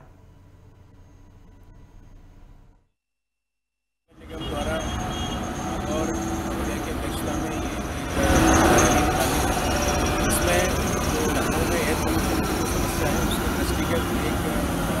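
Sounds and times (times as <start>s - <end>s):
heavy vehicles running: 4.1s - 15.0s
background voices: 5.6s - 15.0s.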